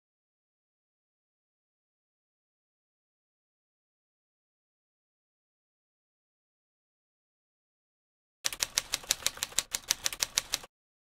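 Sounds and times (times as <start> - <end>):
rapid keyboard typing clicks: 8.5 - 10.7.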